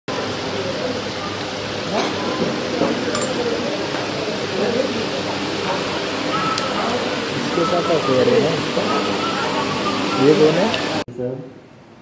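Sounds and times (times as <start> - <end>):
people chattering: 0.2 - 11.0.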